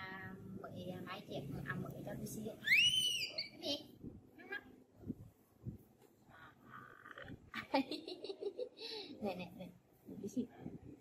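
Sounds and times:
baby monkey chirping: 2.6s - 3.6s
baby monkey squealing: 2.6s - 3.6s.

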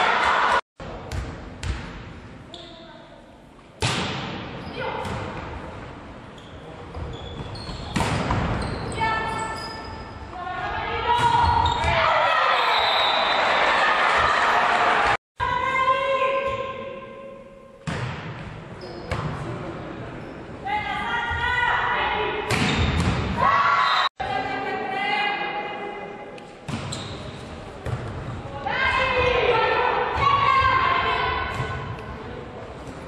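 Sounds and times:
crowd shouting and cheering: 0.0s - 0.6s, 11.2s - 15.2s
volleyball hits echoing: 22.4s - 23.4s.

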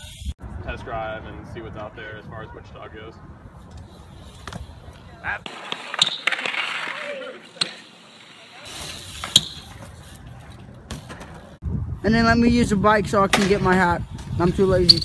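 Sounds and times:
bike tyres rolling on concrete: 1.2s - 11.6s
bike scraping: 3.4s - 11.6s.

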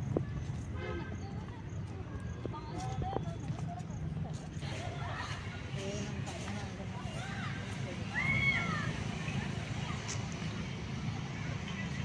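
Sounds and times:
footsteps on brick pavers: 0.0s - 11.3s
faint voices: 0.0s - 12.0s.

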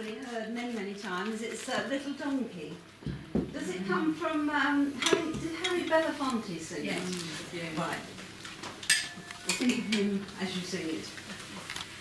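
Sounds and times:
woman talking: 0.0s - 2.8s, 3.5s - 8.2s, 9.5s - 11.3s.

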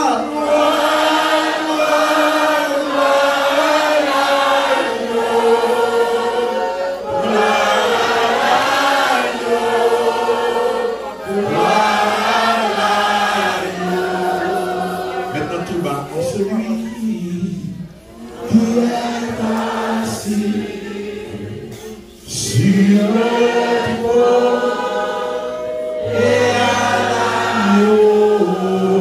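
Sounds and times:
church choir singing: 0.0s - 29.0s.

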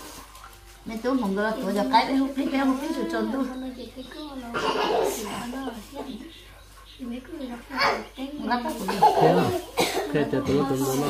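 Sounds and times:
women talking: 0.8s - 11.0s
cough: 4.5s - 5.1s, 9.7s - 10.2s.

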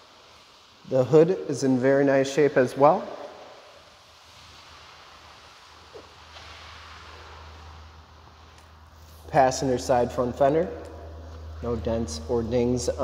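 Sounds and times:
steady hiss: 0.0s - 13.0s
low hum: 6.3s - 13.0s.

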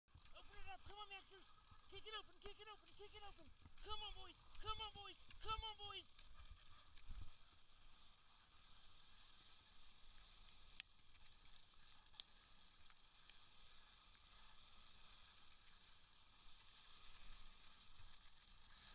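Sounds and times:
skis hissing over snow: 7.5s - 18.9s.

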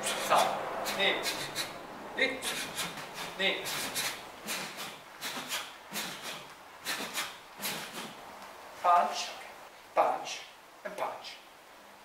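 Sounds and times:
stick swishing through air: 0.0s - 9.4s.

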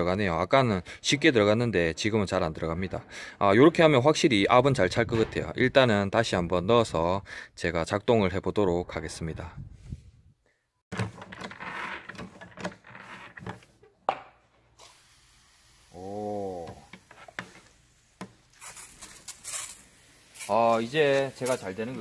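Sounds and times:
hiss: 14.8s - 22.0s.

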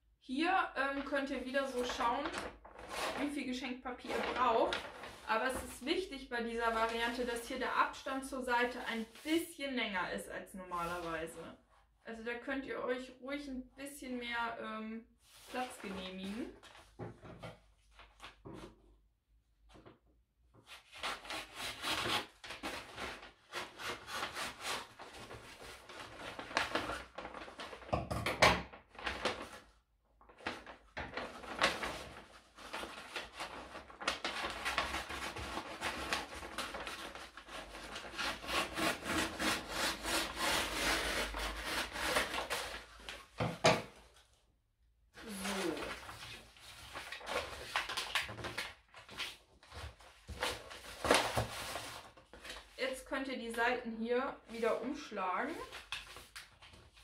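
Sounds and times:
paper rustling and crinkling: 1.0s - 6.0s, 15.2s - 18.8s, 20.6s - 28.0s, 28.6s - 44.4s, 45.2s - 52.8s, 54.5s - 57.0s
scissors cutting paper: 34.2s - 42.8s.

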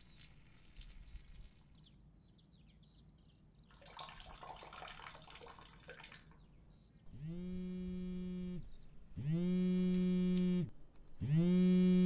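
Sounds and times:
mobile phone vibrating: 7.1s - 12.0s.

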